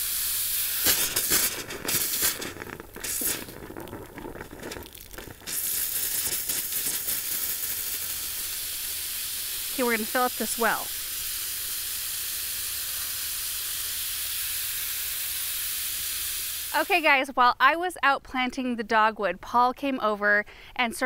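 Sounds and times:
hose nozzle water hissing: 0.0s - 17.0s.

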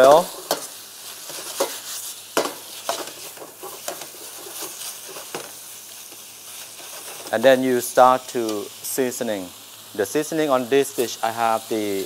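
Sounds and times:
metal utensils scraping a wok: 0.0s - 5.5s, 6.5s - 7.5s
stir-fry sizzling in a wok: 0.0s - 12.0s.

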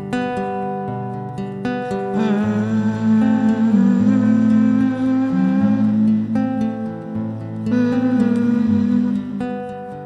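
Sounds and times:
acoustic guitar: 0.0s - 10.0s
person humming: 2.1s - 9.9s.

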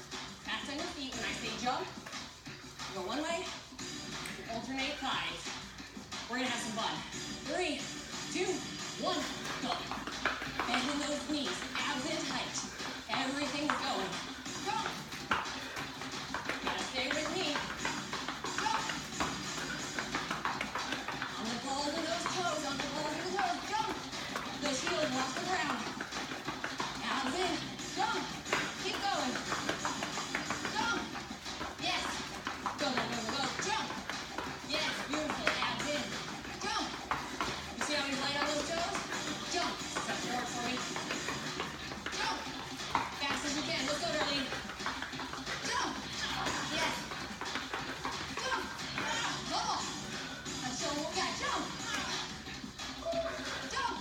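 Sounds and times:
music: 0.0s - 54.0s
sneaker footfalls on floor: 8.0s - 54.0s.

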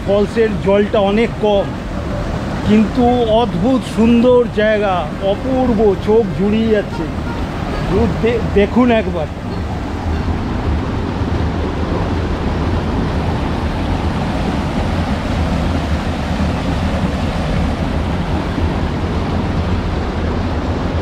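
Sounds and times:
stream rushing over rocks: 0.0s - 21.0s
wind on microphone: 6.8s - 21.0s.

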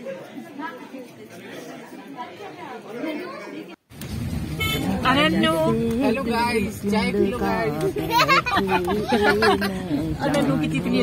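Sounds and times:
women chattering: 4.7s - 11.0s.

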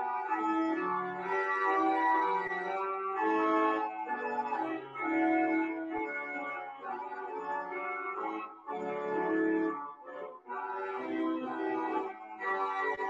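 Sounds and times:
organ playing held chords: 0.1s - 13.0s.

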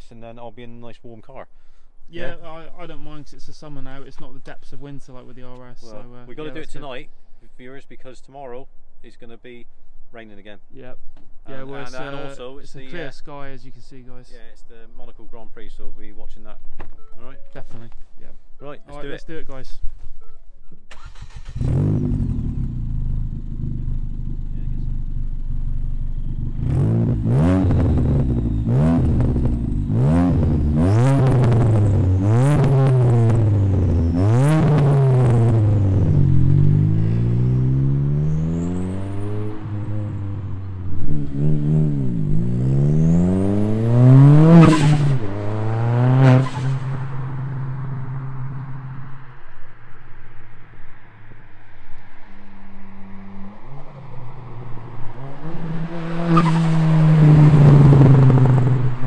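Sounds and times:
car engine revving: 20.9s - 49.7s, 52.2s - 59.0s
car driving past: 20.9s - 59.0s
exhaust pops and crackles: 57.6s - 59.0s.

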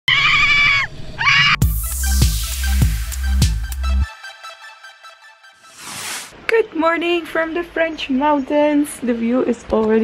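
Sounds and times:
electronic dance music: 1.6s - 6.3s.

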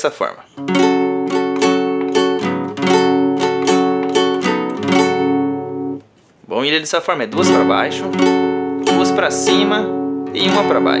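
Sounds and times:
acoustic guitar strumming: 0.6s - 6.1s, 7.3s - 11.0s.

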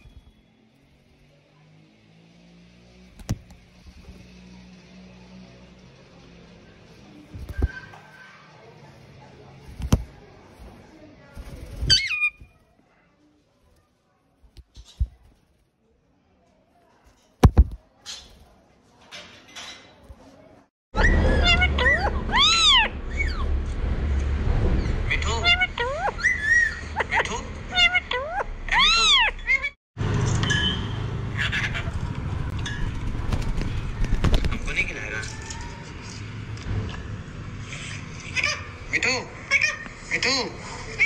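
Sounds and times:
parakeet calling: 11.8s - 12.5s
parakeet squawk: 11.8s - 12.5s, 21.0s - 23.4s, 27.7s - 29.7s.

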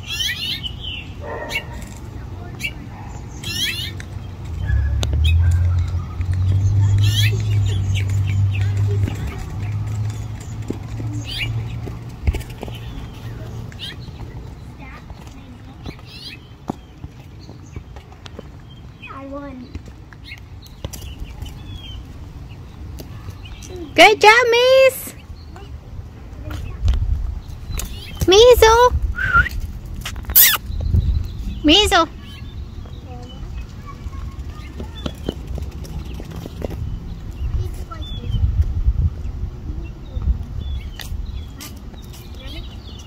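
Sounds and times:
bird chirps: 2.4s - 11.7s, 30.3s - 38.5s
wind on microphone: 26.5s - 32.0s, 35.6s - 42.4s
short high bird chirp: 30.3s - 30.9s.

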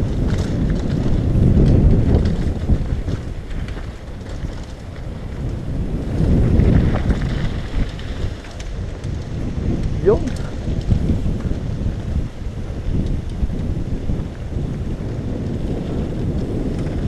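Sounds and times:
bike tyres rolling on gravel: 0.0s - 17.0s
wind buffeting microphone: 0.0s - 17.0s.

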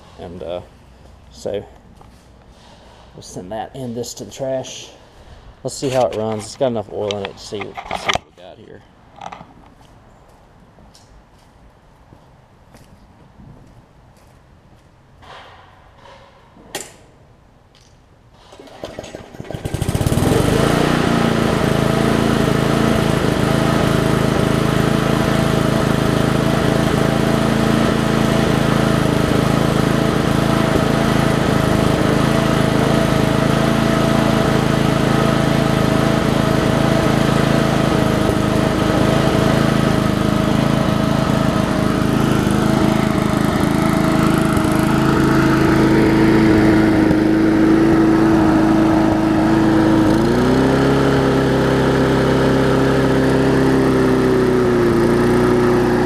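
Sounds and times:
lawn mower engine pull-started: 1.4s - 8.5s, 17.8s - 56.0s.

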